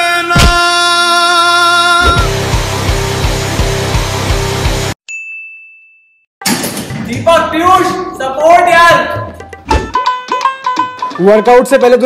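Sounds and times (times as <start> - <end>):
bright chime ding: 5.1 - 6.2.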